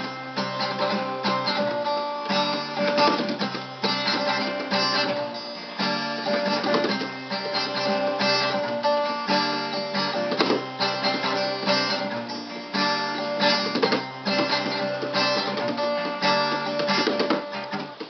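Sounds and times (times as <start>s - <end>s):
acoustic guitar strummed: 0.0s - 18.0s.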